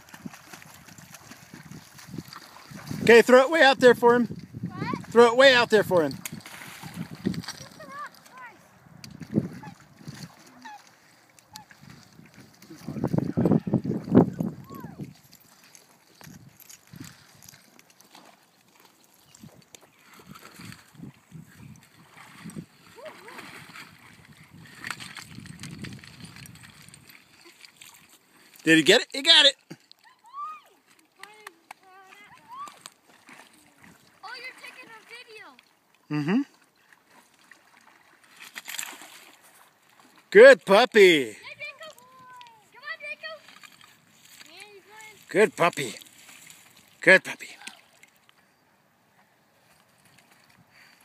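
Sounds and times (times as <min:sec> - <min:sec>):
water splashing: 0:00.0 - 0:48.3.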